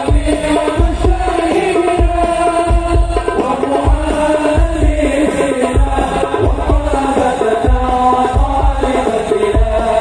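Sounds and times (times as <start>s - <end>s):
group devotional chanting: 0.0s - 10.0s.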